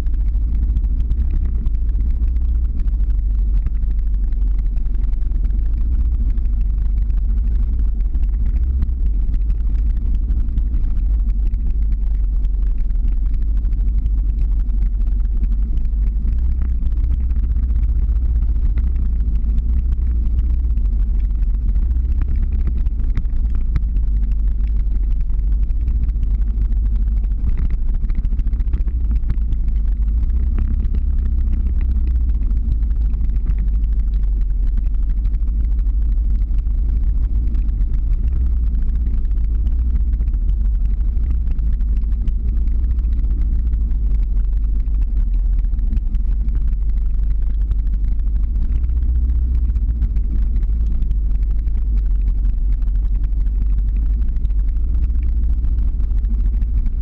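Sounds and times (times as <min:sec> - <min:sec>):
vehicle engine rumbling uphill: 0:00.0 - 0:57.0.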